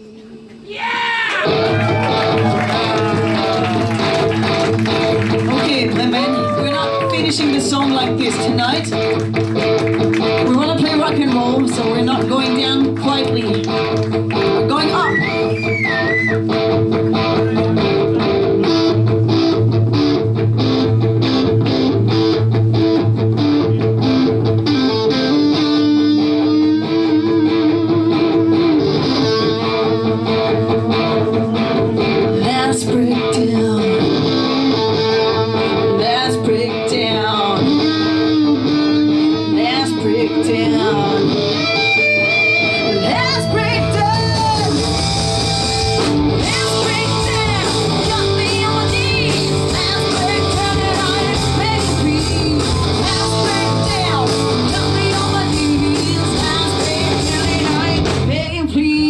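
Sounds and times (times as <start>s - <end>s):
distorted electric guitars: 1.3s - 59.0s
bass guitar: 1.4s - 59.0s
drum kit: 41.6s - 58.6s.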